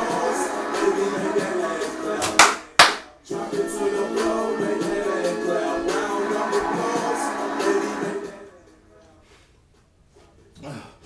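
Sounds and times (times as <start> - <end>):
background music: 0.0 - 9.0
sharp hand claps: 2.2 - 3.1.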